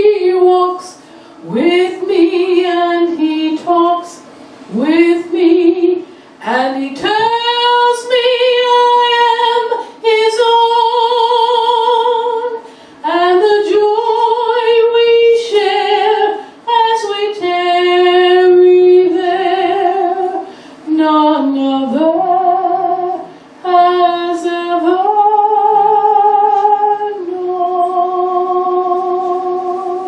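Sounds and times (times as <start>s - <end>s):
woman singing a hymn: 0.0s - 30.0s.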